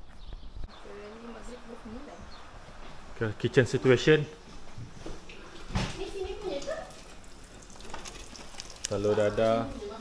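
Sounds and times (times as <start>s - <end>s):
omelette sizzling in a frying pan: 6.6s - 9.6s.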